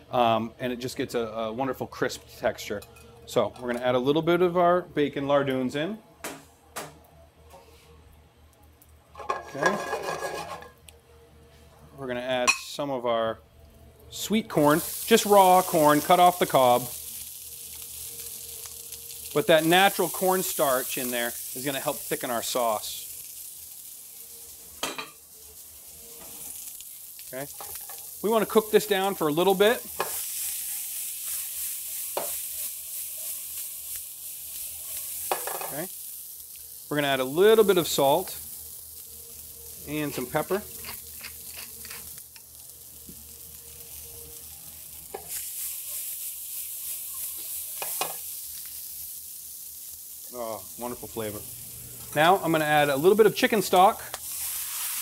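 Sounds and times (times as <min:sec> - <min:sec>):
food sizzling in oil: 0:14.0 - 0:55.0.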